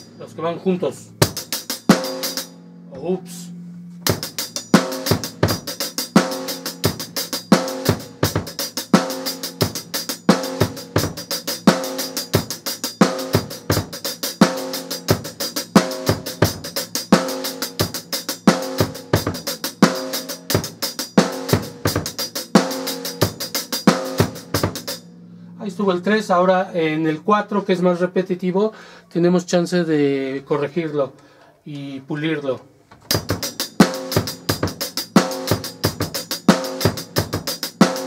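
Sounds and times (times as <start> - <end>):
bass drum kicks: 1.2 - 2.2, 4.0 - 11.8.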